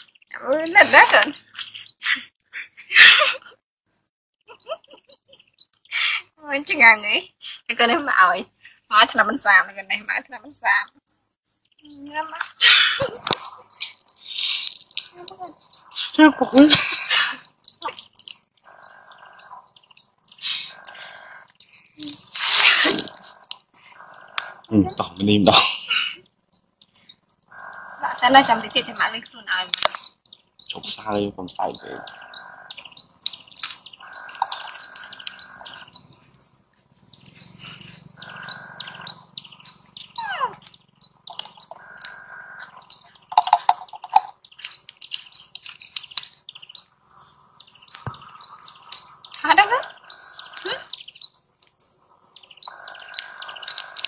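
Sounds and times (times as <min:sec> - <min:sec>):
birds chirping: 0:00.0 - 0:54.0
breathy noise: 0:12.5 - 0:29.6, 0:31.8 - 0:36.4, 0:37.0 - 0:40.7, 0:41.4 - 0:43.1, 0:46.9 - 0:51.1, 0:52.0 - 0:54.0
faint clicks: 0:32.7 - 0:36.0, 0:40.6 - 0:46.7, 0:47.9 - 0:51.8, 0:52.6 - 0:54.0.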